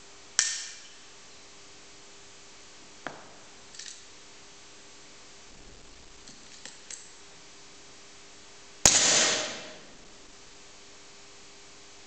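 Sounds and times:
pistol shot: 0:08.9 - 0:10.0.

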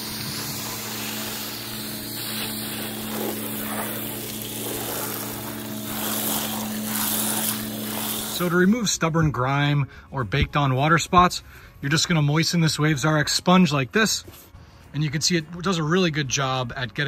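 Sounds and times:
water spray hissing on hull: 0:00.0 - 0:08.6
pressure washer pump humming: 0:00.0 - 0:08.8.

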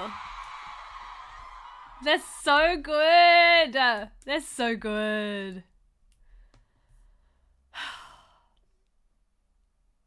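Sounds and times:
woman sighing: 0:07.7 - 0:08.6.

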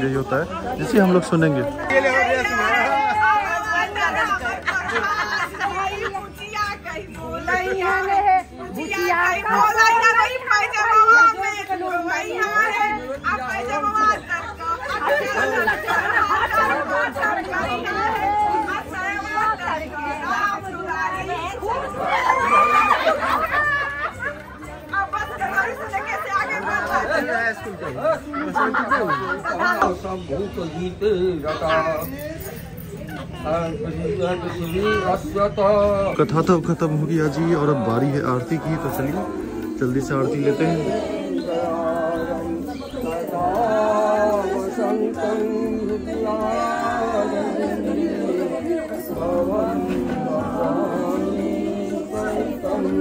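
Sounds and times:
people chattering: 0:00.0 - 0:53.0
group singing: 0:00.6 - 0:27.4, 0:34.6 - 0:53.0.

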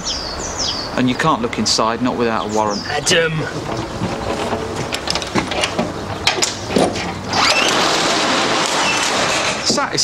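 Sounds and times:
bag handling clicks and knocks: 0:03.5 - 0:07.2.

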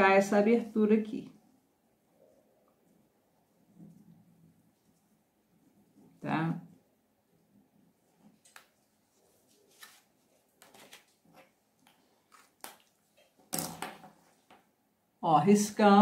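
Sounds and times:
paper and fabric rustling: 0:08.1 - 0:13.4.

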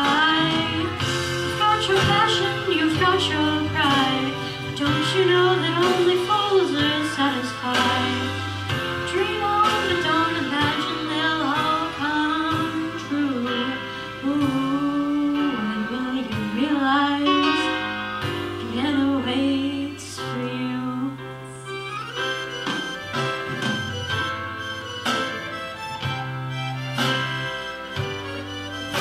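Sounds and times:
girl singing into a microphone: 0:00.0 - 0:22.3
instrumental accompaniment: 0:00.0 - 0:29.0.

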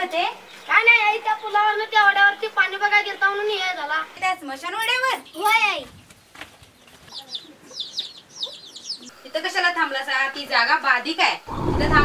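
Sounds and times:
chicks peeping: 0:05.9 - 0:09.1.

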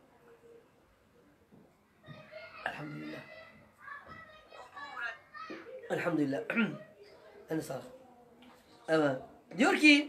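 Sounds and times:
child talking quietly: 0:02.0 - 0:06.0.

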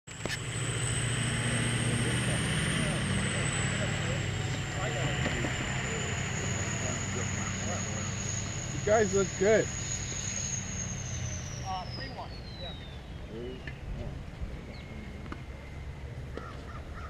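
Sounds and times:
thin high whine: 0:00.1 - 0:16.4
low mechanical hum: 0:00.1 - 0:17.0.

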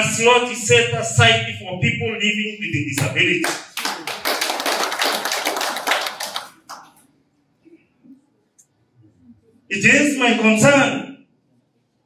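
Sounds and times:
audience applauding: 0:03.4 - 0:07.0.

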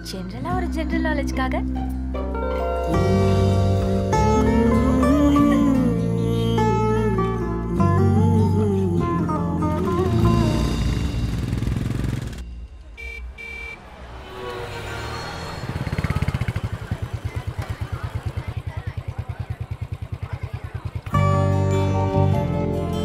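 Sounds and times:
background song: 0:02.3 - 0:11.4
street traffic: 0:09.7 - 0:22.1
motorcycle engine idling: 0:09.8 - 0:12.4, 0:15.7 - 0:21.6
short horn beeps: 0:12.9 - 0:14.5.

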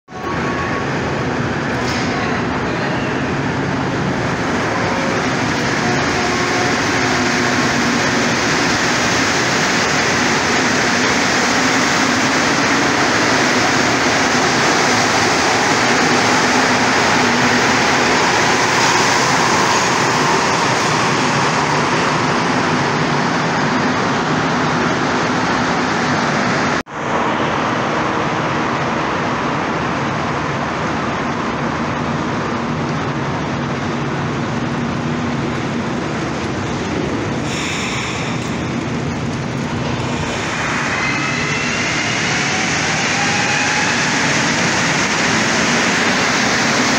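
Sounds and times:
train pulling out: 0:00.1 - 0:46.9
train rumble: 0:00.1 - 0:46.9.

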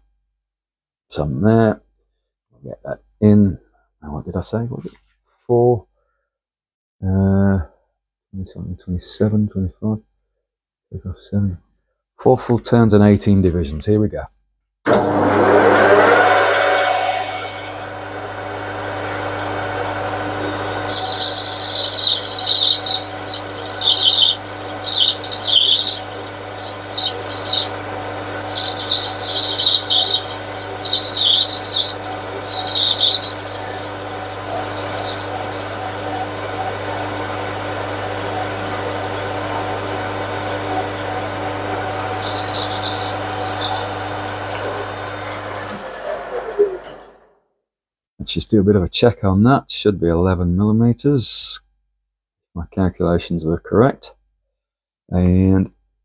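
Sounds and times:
metal lathe running: 0:14.9 - 0:47.1
high-pitched squealing of cutting: 0:18.9 - 0:37.0, 0:41.7 - 0:45.0.

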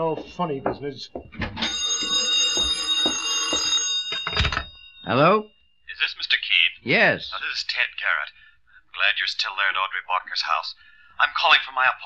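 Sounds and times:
telephone bell ringing: 0:01.6 - 0:05.6.

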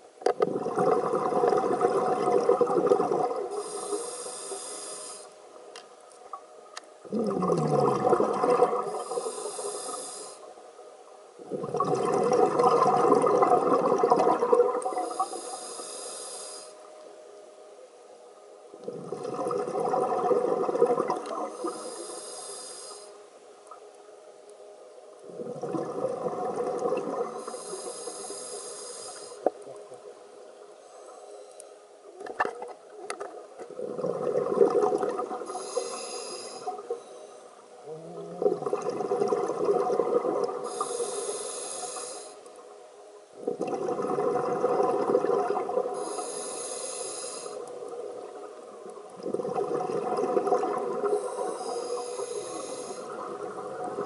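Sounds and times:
demand valve hiss: 0:03.5 - 0:05.3, 0:09.0 - 0:10.5, 0:15.1 - 0:16.8, 0:21.6 - 0:23.2, 0:27.4 - 0:29.5, 0:35.5 - 0:36.8, 0:40.7 - 0:42.4, 0:46.0 - 0:47.7, 0:51.2 - 0:53.1.

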